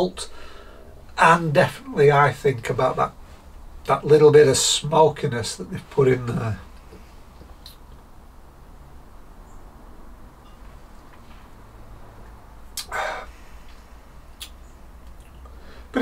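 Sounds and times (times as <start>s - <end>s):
low room hum: 0.0s - 16.0s
man sipping a drink: 12.8s - 13.8s.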